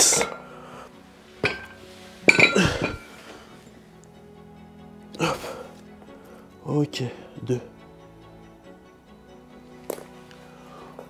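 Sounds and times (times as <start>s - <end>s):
metal dumbbells clinking: 1.4s - 3.1s.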